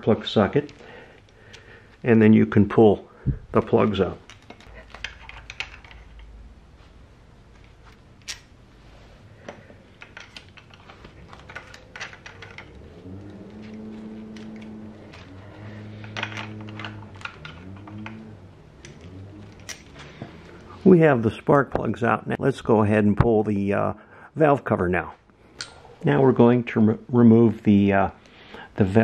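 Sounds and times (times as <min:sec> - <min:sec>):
low rising hum: 0:10.9 - 0:21.3.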